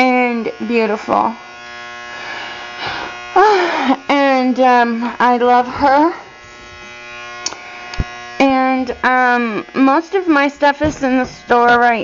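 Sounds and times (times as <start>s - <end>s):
steady buzzing hum: 0.0s - 12.0s.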